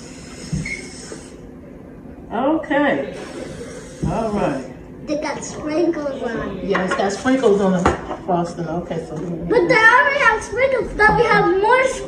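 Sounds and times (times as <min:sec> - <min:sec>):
cooking spray hissing: 0:00.0 - 0:01.4, 0:03.1 - 0:04.6.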